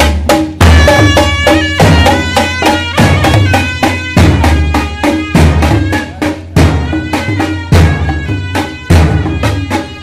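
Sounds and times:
drums beating quick rhythm: 0.0 - 10.0
clarinet folk melody: 0.8 - 10.0.

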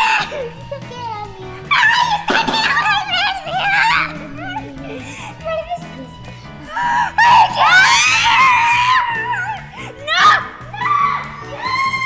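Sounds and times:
girl screaming: 0.0 - 0.5, 1.7 - 5.0, 6.6 - 12.0
background music: 0.0 - 12.0.

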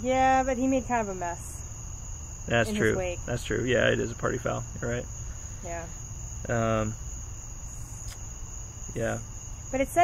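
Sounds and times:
high-pitched whine: 2.5 - 5.0.

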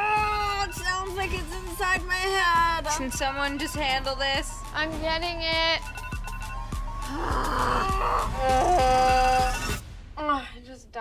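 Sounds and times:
phone alarm song with singing: 2.8 - 4.7.

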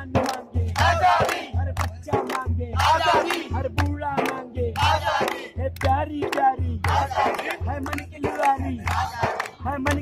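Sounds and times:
drum beating: 0.0 - 10.0
men chanting: 0.0 - 10.0.

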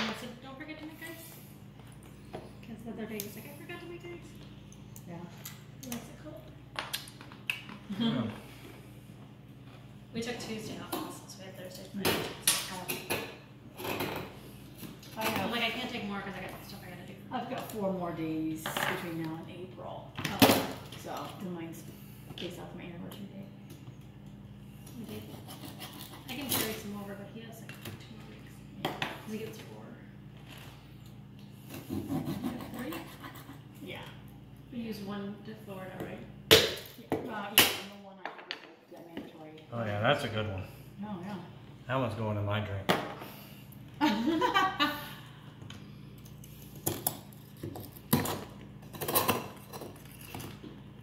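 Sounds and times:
knife sawing ice: 25.2 - 26.4, 31.9 - 33.5.

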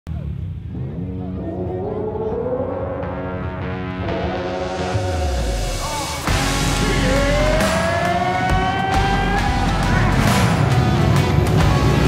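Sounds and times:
people's voices: 0.1 - 12.0
rising pitched sound: 0.7 - 11.7.

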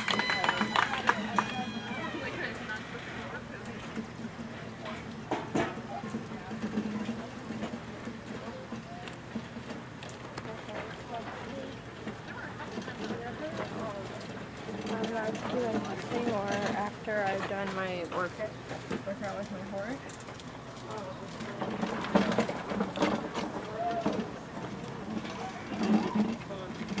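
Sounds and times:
distant chatter of people: 0.0 - 27.0.

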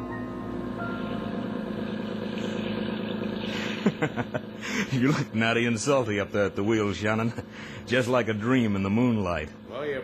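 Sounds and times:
motorboat engine running: 0.0 - 10.0.

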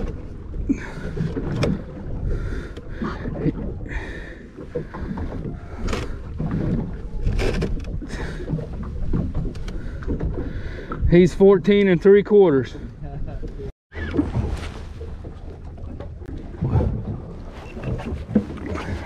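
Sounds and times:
water lapping against boat hull: 0.0 - 19.0.

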